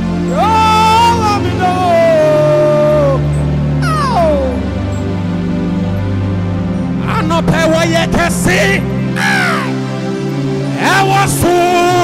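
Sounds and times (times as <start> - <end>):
keyboard chords: 0.0 - 12.0
man's wailing cry: 0.3 - 4.8, 9.2 - 9.8.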